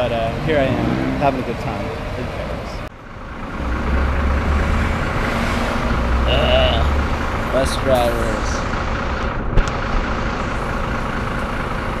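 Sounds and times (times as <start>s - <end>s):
heavy vehicle engine rumbling: 0.0s - 12.0s
street traffic: 0.0s - 12.0s.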